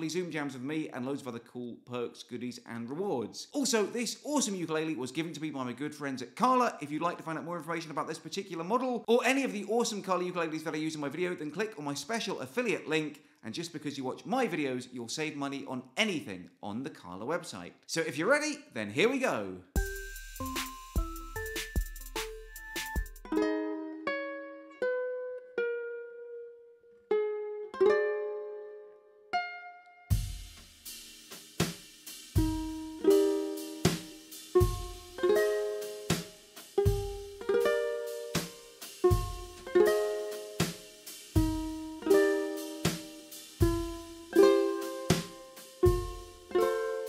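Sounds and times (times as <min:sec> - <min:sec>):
fingerpicked ukulele notes: 0:23.2 - 0:30.2, 0:32.4 - 0:47.0.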